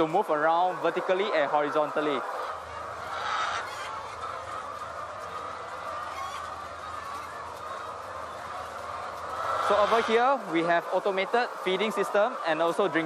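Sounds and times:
hens clucking in chorus: 0.0 - 13.0.

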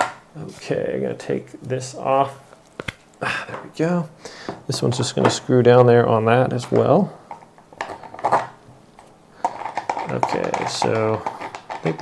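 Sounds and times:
scraping: 7.3 - 12.0.

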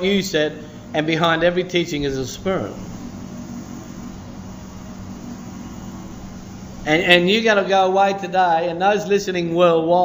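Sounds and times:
room hiss: 0.0 - 9.9
low constant hum: 0.0 - 10.0.

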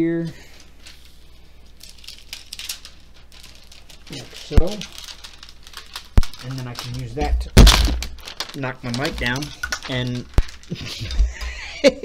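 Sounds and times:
plastic sheet crinkling: 0.4 - 11.9.

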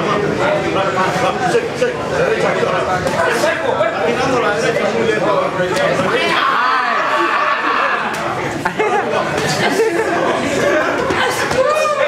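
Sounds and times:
people chattering in echoing room: 0.0 - 12.0.

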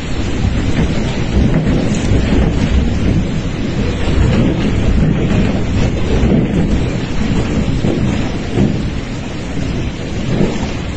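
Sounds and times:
wind gusts buffeting microphone: 0.0 - 10.9
wind-driven rain: 0.0 - 10.9.

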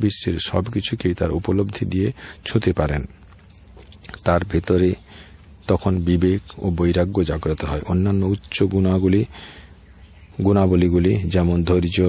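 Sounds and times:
man speaking calmly: 0.0 - 9.7, 10.3 - 12.0
faint high-pitched whine: 0.0 - 12.0.

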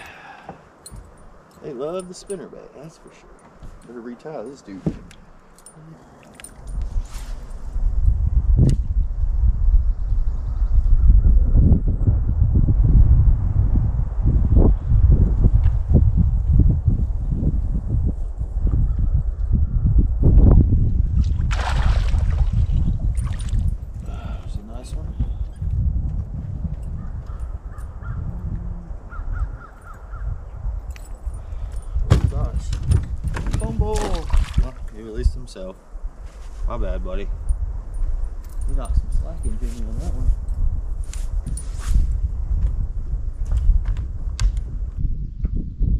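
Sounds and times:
heavy low rumble: 27.9 - 29.6
birds cawing: 29.1 - 30.3.

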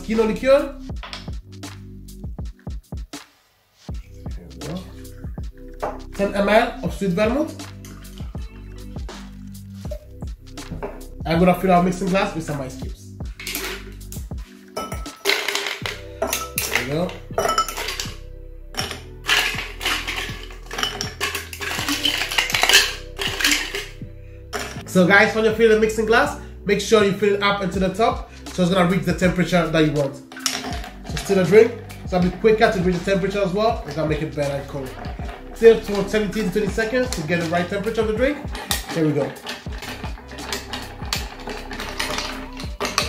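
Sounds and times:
background music: 0.0 - 43.0
ice cubes clinking against glass: 13.4 - 14.0, 14.8 - 18.2, 18.8 - 24.0, 24.6 - 24.8, 30.0 - 43.0.

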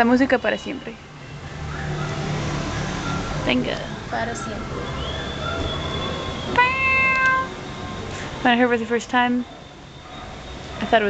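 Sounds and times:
road noise: 0.0 - 11.0.

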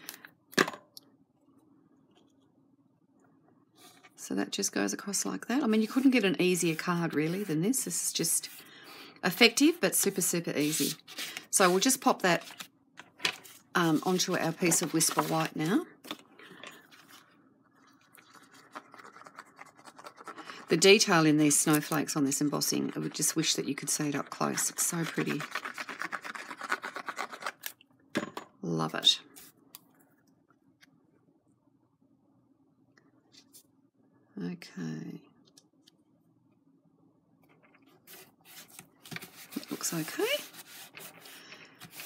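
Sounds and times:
cardstock rustling: 13.3 - 15.7.

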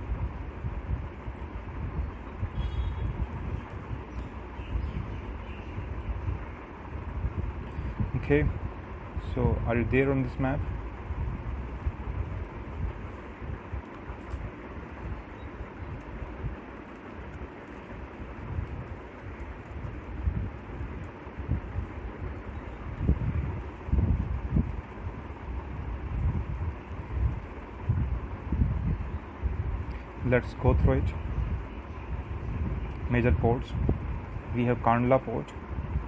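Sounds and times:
air buffeting microphone thumps: 0.0 - 34.6, 35.6 - 36.0
low rumble and hiss: 0.0 - 36.0.

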